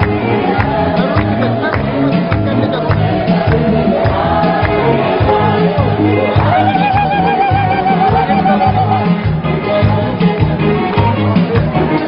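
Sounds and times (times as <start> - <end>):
choir singing a hymn: 0.0 - 8.6
steady low beat: 0.0 - 9.4
high wavering voice holding note: 6.5 - 9.0.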